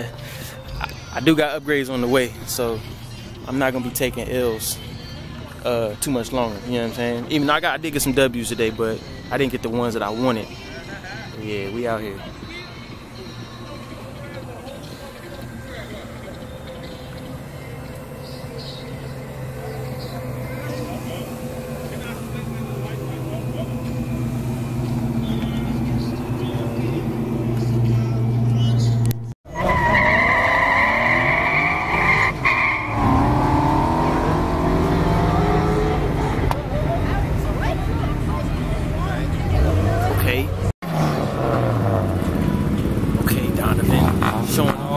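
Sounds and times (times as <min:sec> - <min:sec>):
tires squealing: 0:11.7 - 0:44.9
car engine idling: 0:12.7 - 0:29.2
engine revving: 0:15.7 - 0:44.9.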